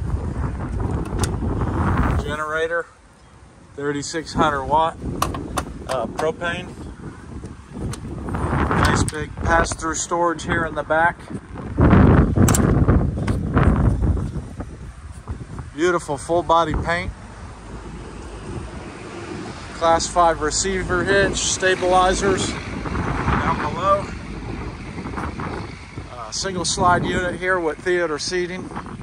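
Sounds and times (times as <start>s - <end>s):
wind buffeting microphone: 0.0s - 29.0s
sharp click: 12.4s - 13.4s.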